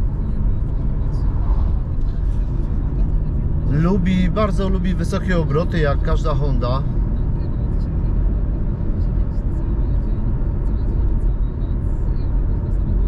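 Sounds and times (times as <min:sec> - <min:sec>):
car engine drone: 0:00.0 - 0:13.0
road noise: 0:00.0 - 0:13.0.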